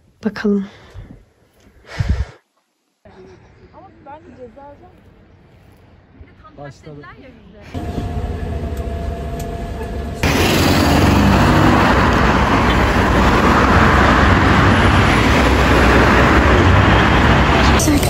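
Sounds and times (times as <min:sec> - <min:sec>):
heavy city traffic: 0:03.0 - 0:18.0
road traffic hum: 0:03.0 - 0:18.0.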